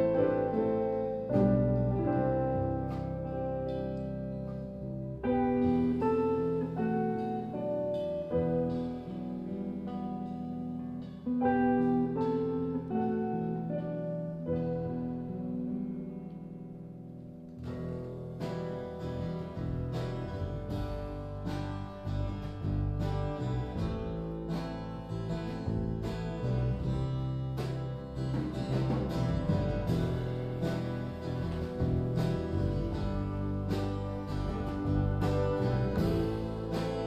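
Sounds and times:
acoustic guitar strumming: 0:00.0 - 0:37.0
electric guitar: 0:00.0 - 0:37.0.

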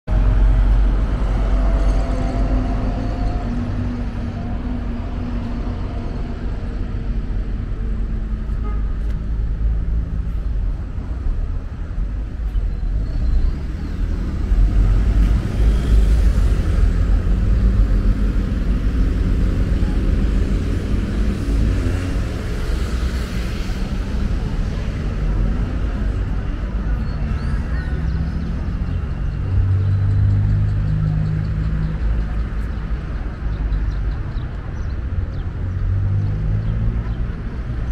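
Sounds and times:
bus and cars driving by: 0:00.1 - 0:37.9
engine hum: 0:00.1 - 0:37.9.

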